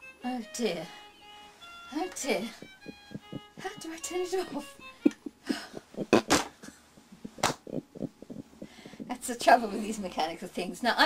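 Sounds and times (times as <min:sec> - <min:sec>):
breathy bursts and knocks: 0:02.4 - 0:09.2.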